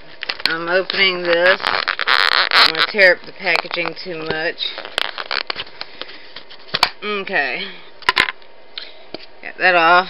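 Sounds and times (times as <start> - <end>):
plastic packaging crinkling: 0.2 - 5.9.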